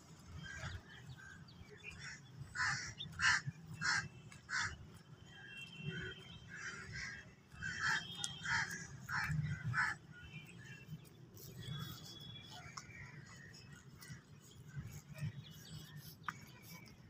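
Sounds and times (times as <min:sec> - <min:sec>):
crows cawing: 0:02.0 - 0:04.8, 0:06.5 - 0:10.0.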